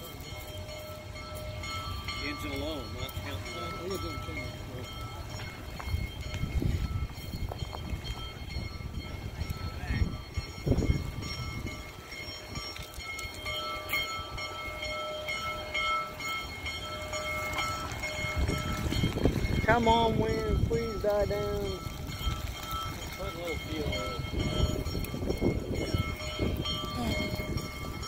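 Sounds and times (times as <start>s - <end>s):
distant steam locomotive rumbling: 0.0s - 28.0s.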